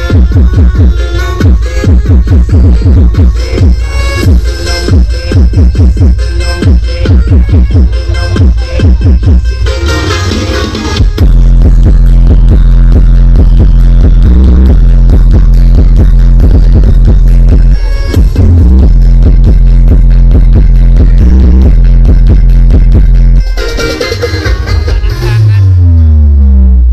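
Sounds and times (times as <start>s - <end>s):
loud electronic dance music: 0.0s - 26.9s.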